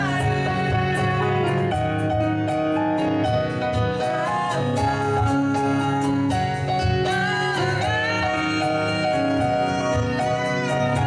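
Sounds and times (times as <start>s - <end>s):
women singing: 0.0s - 2.0s, 3.8s - 11.0s
piano: 0.0s - 11.0s.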